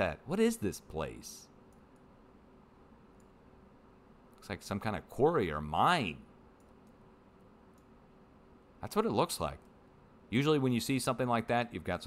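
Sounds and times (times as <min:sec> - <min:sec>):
low room hum: 0:00.0 - 0:12.0
computer mouse clicks: 0:06.6 - 0:07.0, 0:07.7 - 0:08.0.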